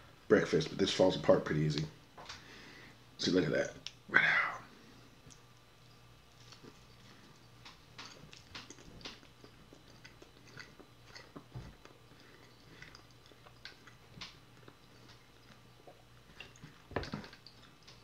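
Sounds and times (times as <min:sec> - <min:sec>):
chewing food: 0:05.3 - 0:18.0.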